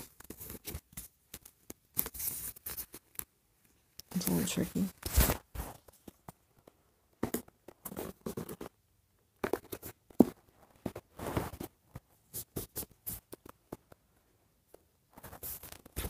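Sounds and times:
cardboard box rustling and scraping: 10.7 - 11.8.

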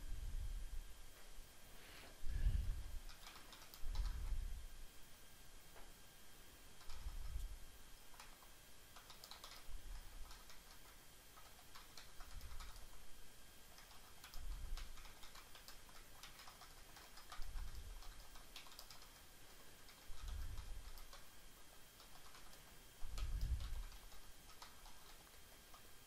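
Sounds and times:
typing on keyboard: 3.1 - 4.3, 6.8 - 7.4, 8.1 - 13.0, 13.7 - 25.9.

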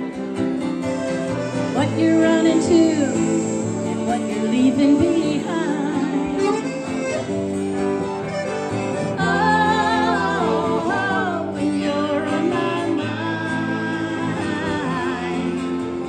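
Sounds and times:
accordion melody: 0.0 - 16.0
country folk band playing: 0.0 - 16.0
electric guitar: 0.0 - 16.0
strummed acoustic guitar: 0.0 - 16.0.

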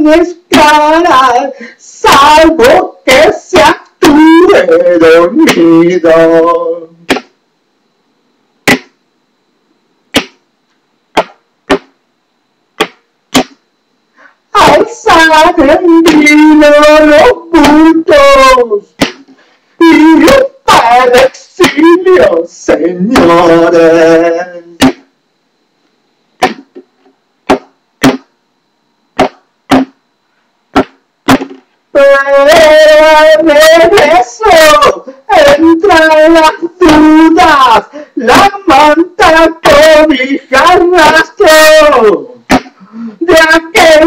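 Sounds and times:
stick beating plastic jug: 7.1 - 7.3, 8.6 - 9.0, 10.1 - 10.4, 11.1 - 12.0, 12.8 - 13.6, 19.0 - 19.3, 24.8 - 25.1, 26.4 - 28.3, 29.2 - 30.0, 30.7 - 31.6, 42.5 - 42.8
plastic jug struck as hand drum: 27.5 - 28.3, 29.2 - 30.0, 30.8 - 31.6.

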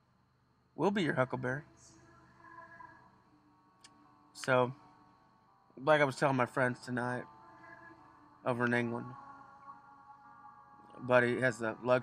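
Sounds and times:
soft sustained background music: 0.0 - 12.0.

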